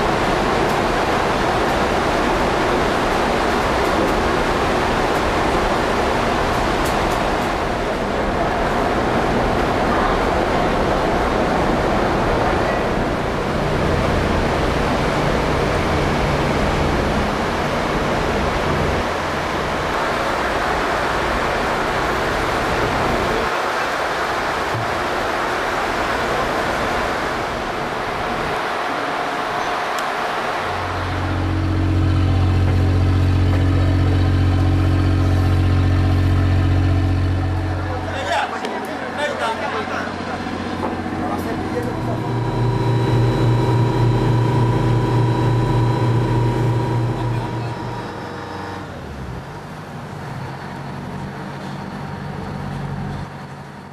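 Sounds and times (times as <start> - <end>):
heavy machinery running: 30.5 - 50.9
loud low drone with overtones: 30.6 - 49.6.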